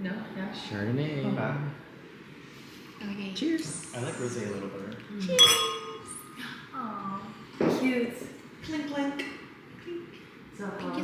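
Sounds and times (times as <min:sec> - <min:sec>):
wine glasses clinking: 0:05.3 - 0:06.4.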